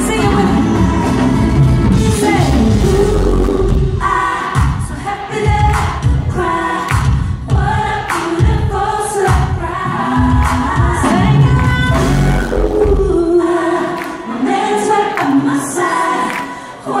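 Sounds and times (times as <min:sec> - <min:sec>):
band with pulsing bass beat: 0:00.0 - 0:08.7, 0:10.2 - 0:13.3
backing vocalists singing: 0:00.0 - 0:17.0
woman singing lead: 0:00.0 - 0:17.0.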